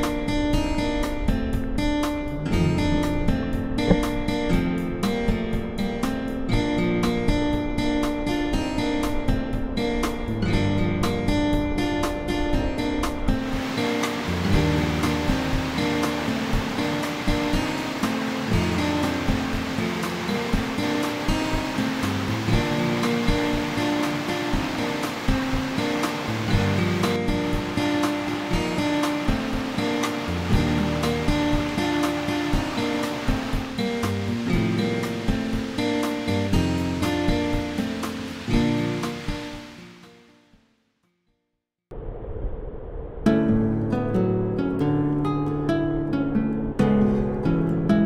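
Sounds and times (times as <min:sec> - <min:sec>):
background music: 0:00.0 - 0:40.1
stream rushing over rocks: 0:13.4 - 0:40.0.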